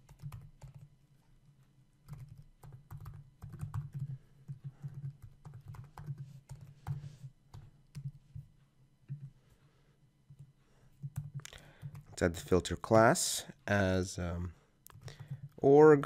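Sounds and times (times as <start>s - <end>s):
typing on computer keyboard: 0.0s - 0.9s, 2.0s - 8.4s, 10.3s - 12.2s, 14.9s - 15.6s.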